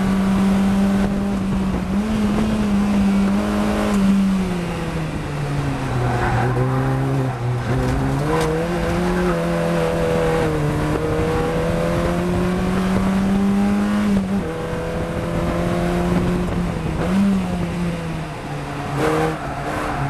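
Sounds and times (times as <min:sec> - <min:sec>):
race car engine revving: 0:00.0 - 0:20.0.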